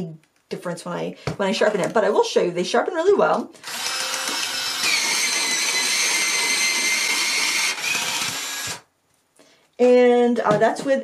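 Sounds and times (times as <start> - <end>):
electric pencil sharpener motor whining: 3.6 - 8.8.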